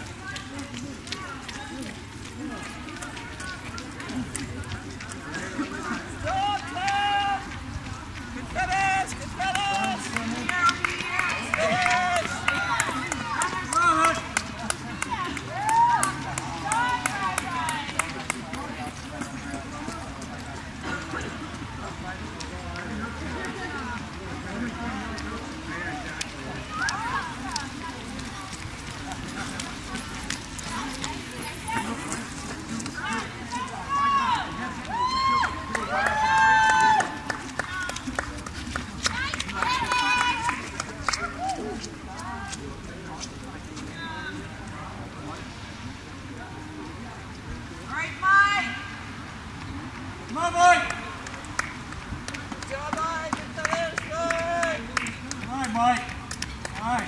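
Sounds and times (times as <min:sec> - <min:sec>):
spectators chatting and calling out: 0:00.0 - 0:57.0
spectators shouting and whooping: 0:15.4 - 0:17.8, 0:33.1 - 0:37.3.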